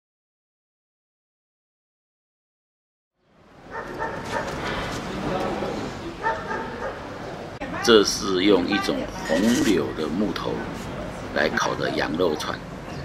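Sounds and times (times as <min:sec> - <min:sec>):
people's voices: 0:04.9 - 0:13.0
man speaking: 0:07.8 - 0:12.7.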